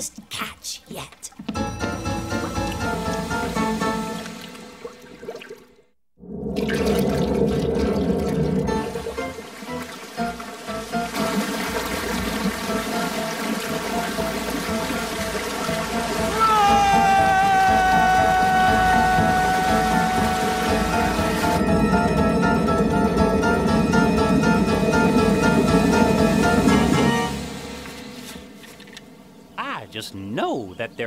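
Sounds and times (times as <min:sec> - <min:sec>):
background music: 0:01.5 - 0:05.8, 0:08.2 - 0:30.2
cartoon bubbling slime: 0:06.2 - 0:09.3
long high note: 0:16.4 - 0:23.0.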